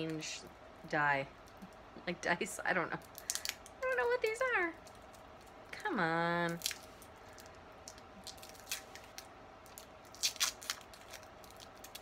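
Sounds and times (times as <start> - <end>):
sticky tape being peeled: 6.5 - 12.0.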